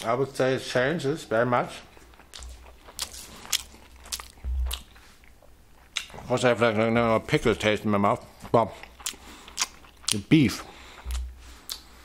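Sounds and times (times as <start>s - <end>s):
person chewing: 1.9s - 6.3s, 8.3s - 12.0s.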